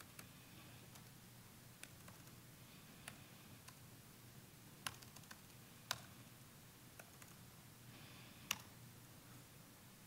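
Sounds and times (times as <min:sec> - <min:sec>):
low room hum: 0:00.0 - 0:10.0
computer keyboard clicks: 0:01.8 - 0:02.4, 0:04.8 - 0:06.1, 0:07.0 - 0:07.4, 0:08.5 - 0:08.7.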